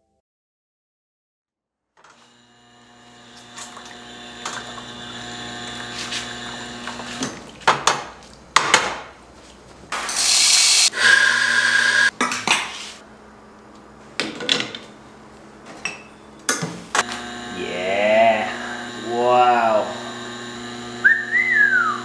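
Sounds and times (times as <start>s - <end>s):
espresso machine humming: 2.2s - 7.2s, 10.2s - 12.1s, 17.0s - 22.0s
person's voice: 17.5s - 20.0s.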